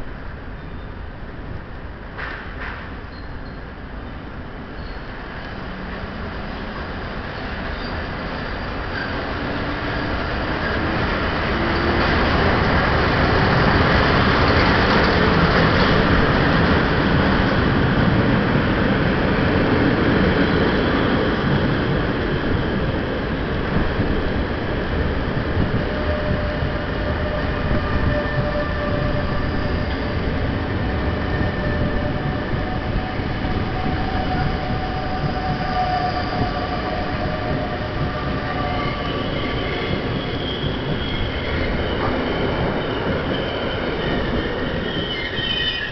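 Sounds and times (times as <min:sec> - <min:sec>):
train wheel squeal: 0:00.6 - 0:01.0, 0:02.2 - 0:03.7, 0:04.7 - 0:05.2, 0:07.3 - 0:16.3, 0:25.6 - 0:45.9
electric locomotive passing: 0:03.1 - 0:45.9.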